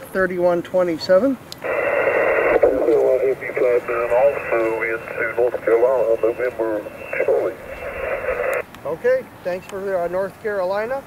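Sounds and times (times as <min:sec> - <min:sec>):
radio band hiss: 0:01.6 - 0:08.6
voice over radio speaker: 0:01.6 - 0:08.6.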